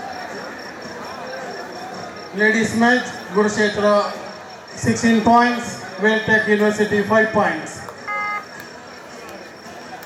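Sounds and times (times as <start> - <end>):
low background hubbub: 0.0 - 10.0
electronic beep: 8.0 - 8.6.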